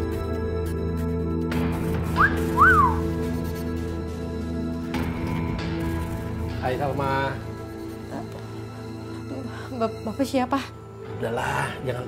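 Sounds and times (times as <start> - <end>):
background music with sustained tones: 0.0 - 12.0
person wolf whistling: 2.2 - 3.1.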